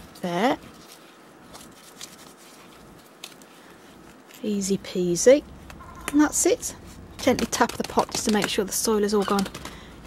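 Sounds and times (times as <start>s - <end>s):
fingers rustling potting mix: 0.0s - 10.0s.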